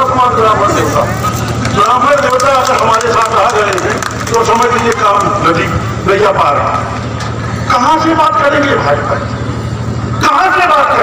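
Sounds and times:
man speaking over loudspeakers: 0.0s - 9.5s, 10.1s - 11.0s.

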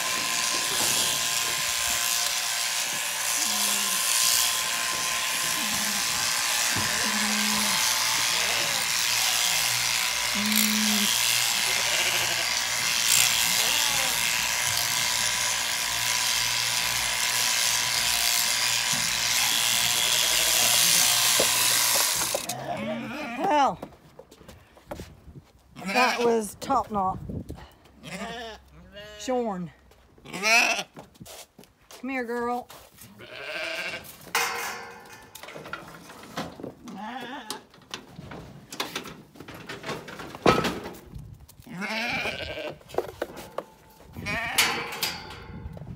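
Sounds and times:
electric sheep shears running: 0.0s - 22.6s
sheep bleating: 5.2s - 9.7s, 10.3s - 14.5s, 22.4s - 23.5s, 25.8s - 26.2s, 28.0s - 29.3s, 30.2s - 30.9s, 33.2s - 34.1s, 36.9s - 37.6s, 41.7s - 42.8s.

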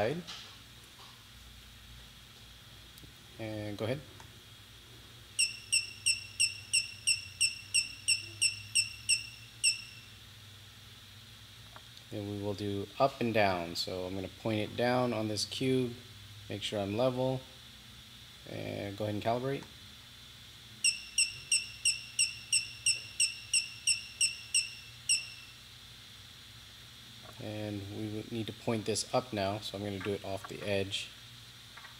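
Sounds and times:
short high electronic beeps: 5.4s - 10.1s, 20.8s - 25.6s.

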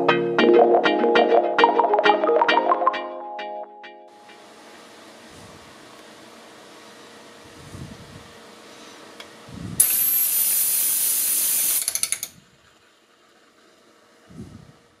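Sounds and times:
anemometer spinning with whistle: 9.8s - 11.8s.

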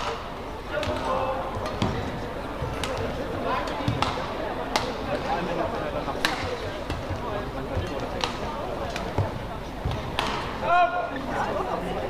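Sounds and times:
racket striking shuttlecock: 2.7s - 5.1s, 6.2s - 7.2s
player shouting: 10.6s - 11.1s.

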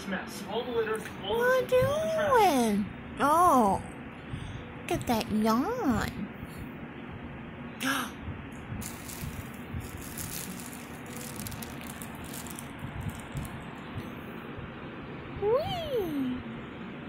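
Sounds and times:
plastic bag crinkling: 8.8s - 13.8s.

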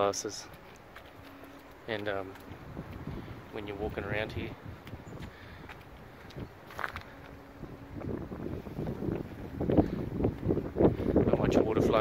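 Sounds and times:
footsteps on a path: 0.0s - 12.0s
wind on microphone: 2.0s - 12.0s.

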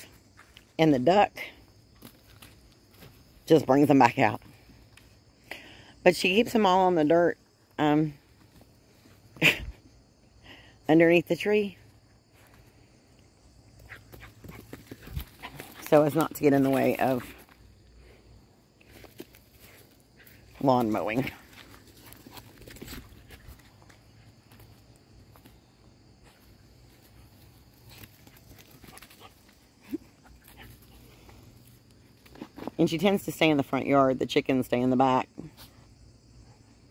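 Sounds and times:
footsteps crunching on dry twigs: 18.7s - 25.6s.

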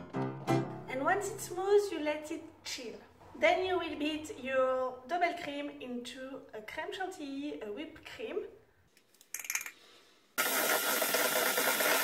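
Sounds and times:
beaters whipping cream in steel bowl: 10.4s - 12.0s
electric hand mixer running: 10.4s - 12.0s.

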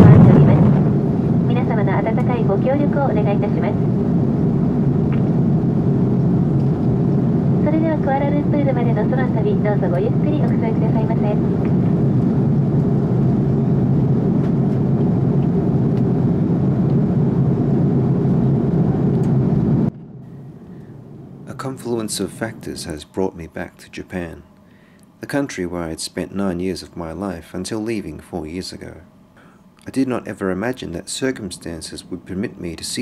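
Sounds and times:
airliner cabin roar: 0.0s - 33.0s
muffled voices talking: 1.5s - 4.0s, 7.6s - 11.6s, 21.5s - 24.4s.

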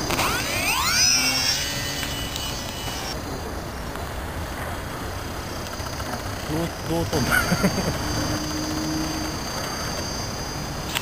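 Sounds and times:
electric motor propeller whine: 0.0s - 3.2s.

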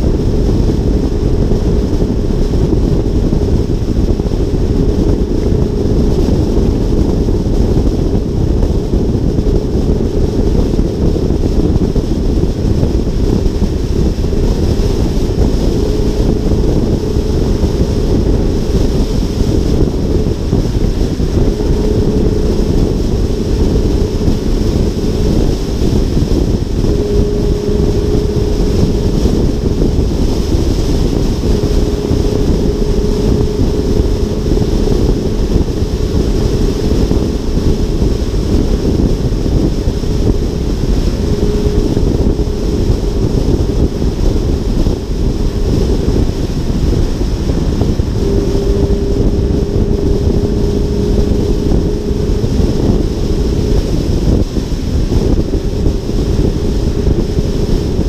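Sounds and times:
car tyre and road noise: 0.0s - 58.0s
faint hum: 0.0s - 58.0s
wind buffeting microphone: 0.0s - 58.0s.

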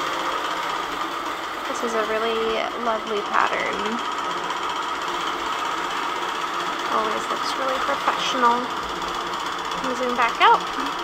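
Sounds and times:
quilting machine stitching: 0.0s - 11.0s.

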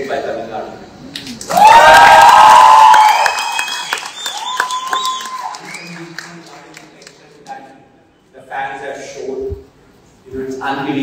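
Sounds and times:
applause: 1.4s - 7.5s
audience cheering and screaming: 1.5s - 5.8s.

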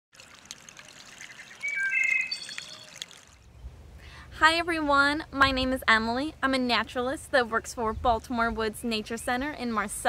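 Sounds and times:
water trickling and gurgling: 0.1s - 3.5s
brief ringing tones: 1.6s - 3.0s.

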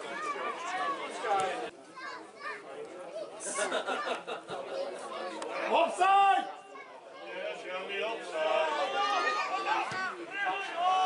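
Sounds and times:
voices chattering and calling: 0.0s - 11.0s.

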